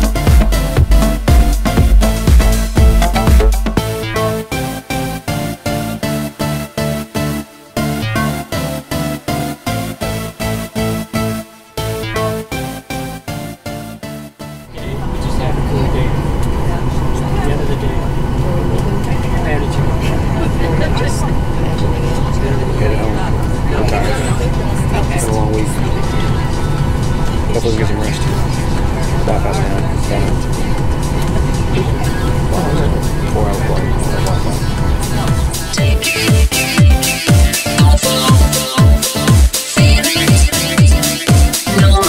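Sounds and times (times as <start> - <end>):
murmuring voices: 14.7 - 37.2.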